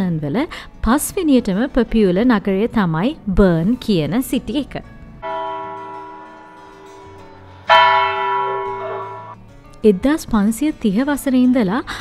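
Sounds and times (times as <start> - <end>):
clock tower bell striking: 5.2 - 9.4.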